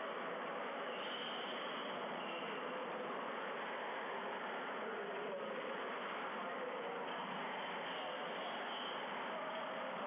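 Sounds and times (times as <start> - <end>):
room and recording hiss: 0.0 - 10.0.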